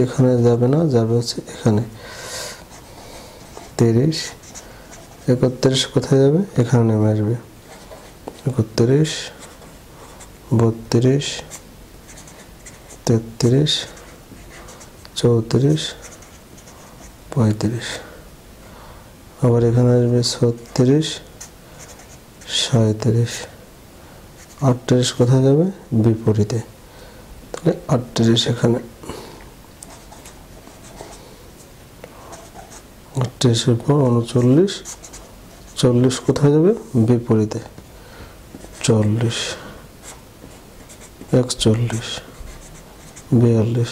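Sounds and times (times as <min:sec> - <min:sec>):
marker pen scratching on paper: 0:02.6 - 0:05.9, 0:07.6 - 0:10.5, 0:11.2 - 0:17.2, 0:20.3 - 0:22.7, 0:29.8 - 0:31.3, 0:32.2 - 0:32.9, 0:33.8 - 0:36.9, 0:38.5 - 0:43.9
man speaking: 0:03.8 - 0:04.4, 0:13.0 - 0:14.0, 0:15.2 - 0:16.1, 0:17.3 - 0:18.2, 0:19.4 - 0:21.3, 0:22.4 - 0:23.6, 0:24.6 - 0:26.7, 0:27.6 - 0:29.0, 0:33.2 - 0:35.0, 0:35.8 - 0:37.8, 0:38.8 - 0:39.8, 0:41.3 - 0:42.3, 0:43.3 - 0:43.9.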